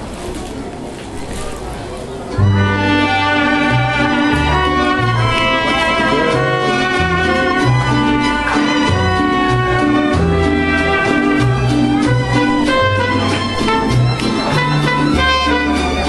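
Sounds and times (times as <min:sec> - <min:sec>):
audience murmur: 0:00.0 - 0:16.0
mariachi ensemble playing: 0:02.4 - 0:16.0.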